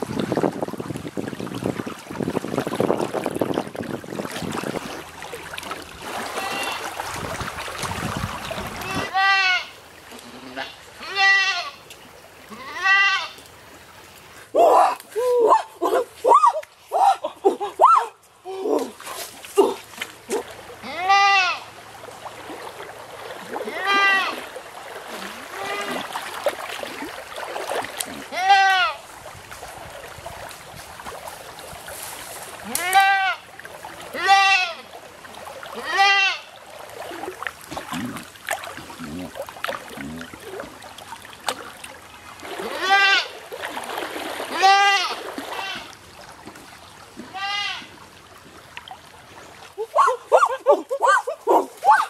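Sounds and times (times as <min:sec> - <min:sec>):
goat bleating: 0:06.3 - 0:06.9, 0:08.8 - 0:11.8, 0:12.5 - 0:13.4, 0:20.8 - 0:21.7, 0:23.6 - 0:24.4, 0:25.5 - 0:26.1, 0:28.3 - 0:29.0, 0:32.6 - 0:33.4, 0:34.1 - 0:34.9, 0:35.8 - 0:36.5, 0:42.6 - 0:43.4, 0:44.5 - 0:45.9, 0:47.3 - 0:47.9.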